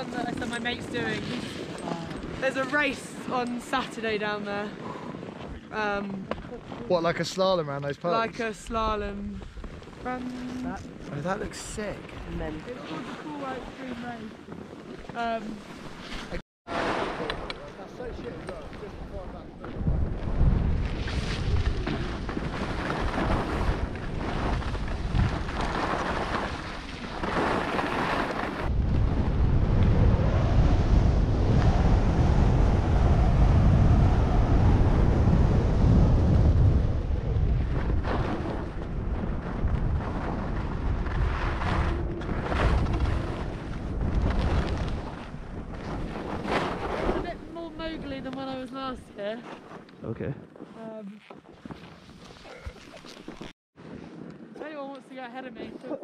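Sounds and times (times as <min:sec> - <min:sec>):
wind buffeting microphone: 0:00.0 - 0:07.6, 0:17.2 - 0:49.4
skis scraping over snow: 0:20.9 - 0:28.7.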